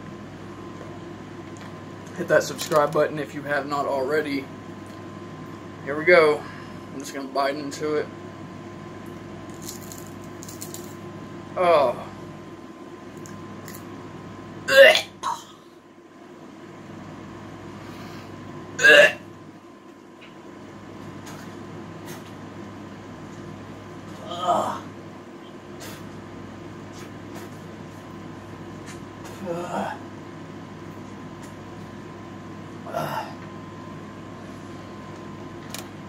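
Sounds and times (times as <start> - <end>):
air conditioner hum: 0.0 - 36.0
crunching of shell between teeth: 9.5 - 11.0.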